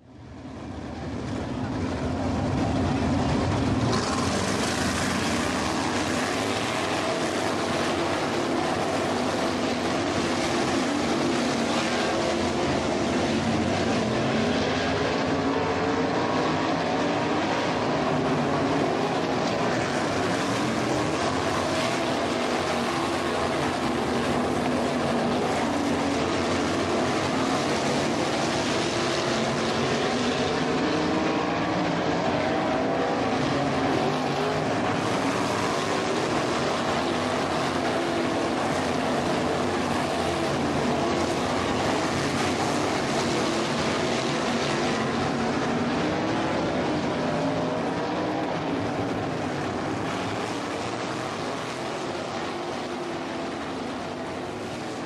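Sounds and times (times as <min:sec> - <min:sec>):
race car engines droning: 0:00.0 - 0:55.0.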